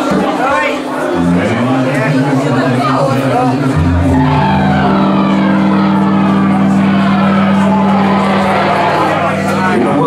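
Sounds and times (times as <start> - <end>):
faint voices: 0.0 - 10.0
amplified band drone: 0.6 - 10.0.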